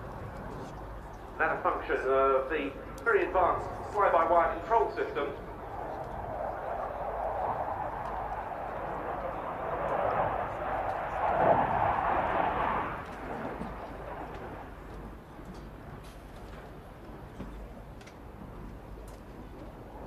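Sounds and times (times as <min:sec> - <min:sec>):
fighter jet engines roaring: 0:00.0 - 0:20.0.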